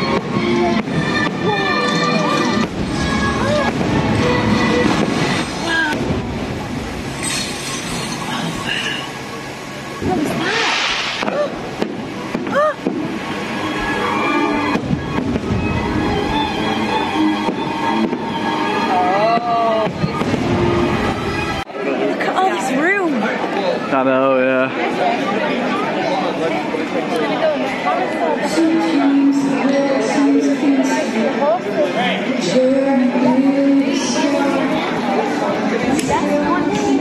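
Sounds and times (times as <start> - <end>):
show music: 0.0 - 6.6, 12.3 - 21.6
fireworks crackling: 0.0 - 21.6
crowd voices: 0.0 - 37.0
fireworks whistles: 7.1 - 9.3, 10.0 - 18.9.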